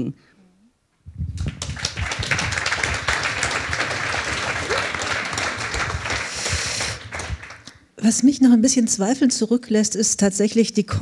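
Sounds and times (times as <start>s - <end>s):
audience applauding: 1.4s - 7.8s.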